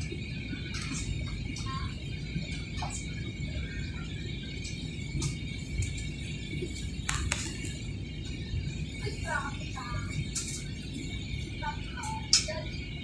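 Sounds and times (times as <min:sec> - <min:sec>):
airliner cabin rumble: 0:00.0 - 0:13.0.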